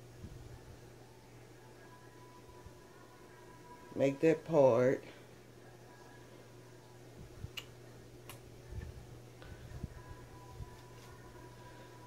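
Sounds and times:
faint steady hum: 0.0 - 12.0
comb clicks: 7.5 - 8.4.

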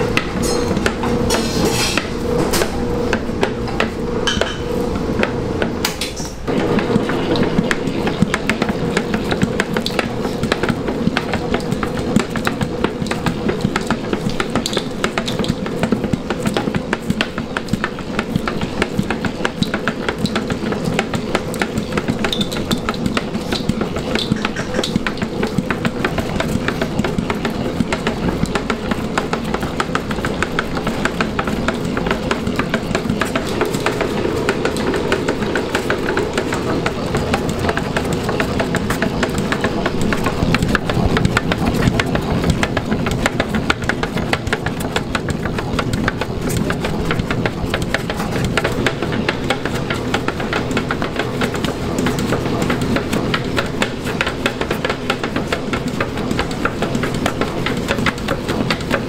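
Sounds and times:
dough hook clattering: 0.0 - 59.0
stand mixer motor hum: 0.0 - 59.0.

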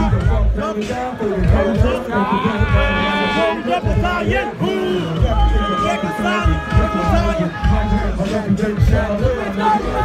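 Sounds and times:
hip-hop beat: 0.0 - 10.0
man shouting into a microphone: 1.4 - 8.2.

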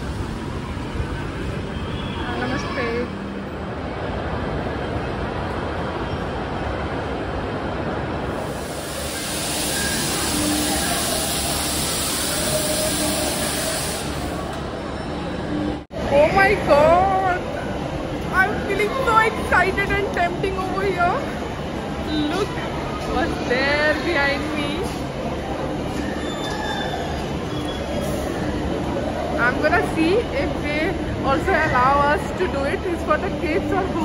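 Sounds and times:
arcade machine and ride noise: 0.0 - 34.0.

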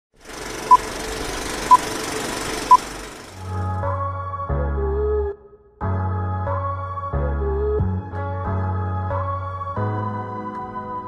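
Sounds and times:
keyboard music with bass line: 3.4 - 11.0.

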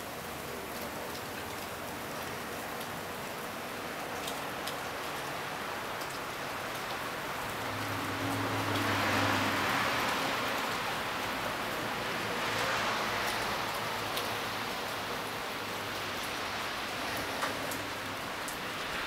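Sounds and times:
wet snow and rain hissing: 0.0 - 19.0.

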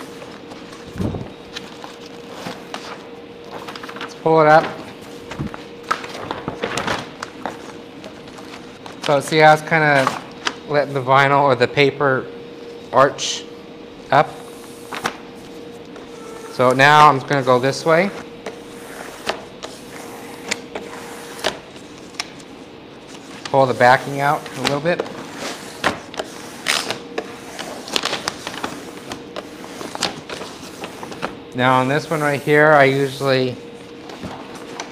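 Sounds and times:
vinyl film crackling and rustling: 1.5 - 9.2, 27.8 - 31.4.

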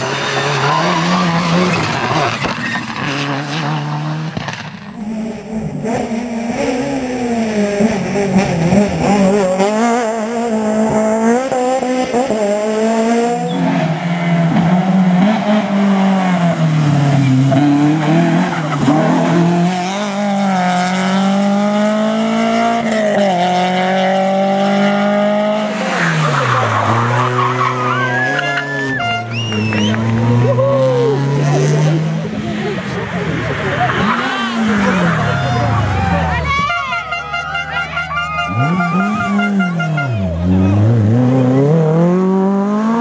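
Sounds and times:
rally car engine accelerating: 0.0 - 36.8, 38.4 - 43.0
spectators chattering: 25.5 - 42.8.

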